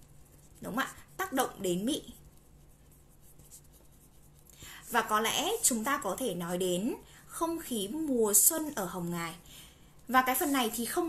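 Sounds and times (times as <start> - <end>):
pen scratching on paper: 0.0 - 6.4, 10.1 - 11.0
woman speaking: 0.6 - 2.2, 4.8 - 9.4, 10.1 - 11.0.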